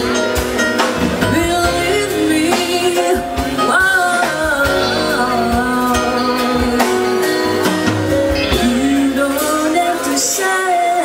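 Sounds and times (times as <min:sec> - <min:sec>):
instrumental accompaniment with beat: 0:00.0 - 0:11.0
woman singing into microphone: 0:01.2 - 0:11.0.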